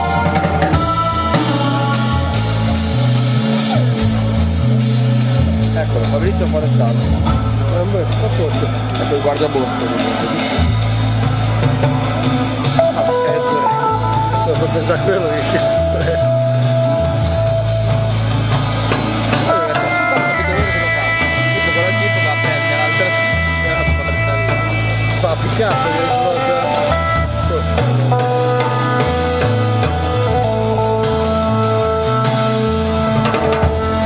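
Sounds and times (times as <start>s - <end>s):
drum kit and cymbals: 0.0s - 34.0s
jazz guitar: 0.0s - 34.0s
low bass notes: 0.0s - 34.0s.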